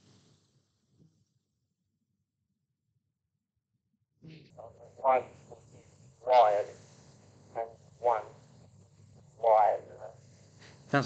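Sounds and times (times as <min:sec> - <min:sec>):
steady low hum: 0:04.2 - 0:11.0
radio voice transmission: 0:04.3 - 0:11.0.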